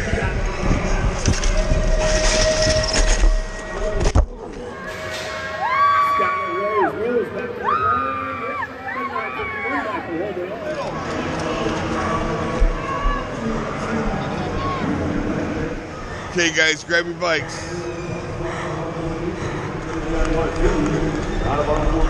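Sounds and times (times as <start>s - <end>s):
wind noise on microphone: 0.0s - 4.3s
spectators yelling and cheering: 3.7s - 16.2s.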